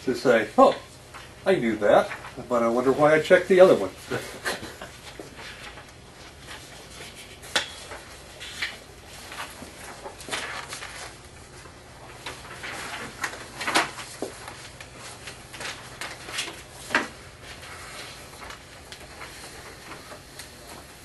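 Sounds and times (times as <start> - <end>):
low electrical hum: 0.0 - 21.0
papers rustling: 1.1 - 21.0.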